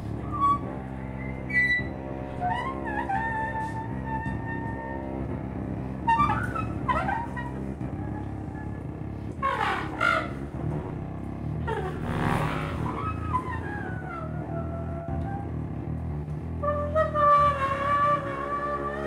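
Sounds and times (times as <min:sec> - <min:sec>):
bowed cello: 0:00.0 - 0:19.0
contrabass clarinet: 0:00.0 - 0:19.0.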